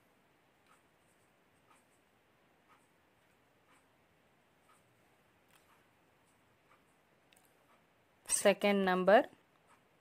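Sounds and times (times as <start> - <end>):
soft ticking: 0.0 - 10.0.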